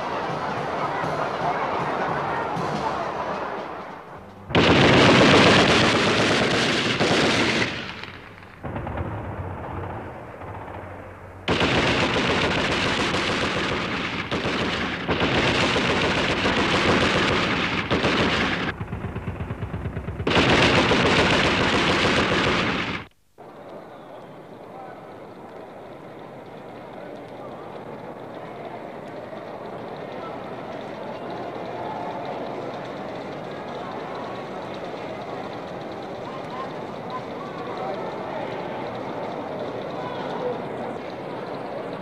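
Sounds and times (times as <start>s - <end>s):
distant gunfire rattle: 4.2s - 24.6s, 25.2s - 42.0s
heavy machine gun automatic fire: 4.5s - 23.1s, 29.4s - 42.0s.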